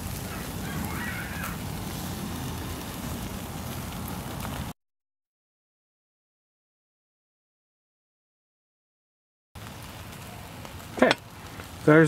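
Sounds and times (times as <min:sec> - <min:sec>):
burgers sizzling on grill: 0:00.0 - 0:04.8, 0:09.6 - 0:12.0.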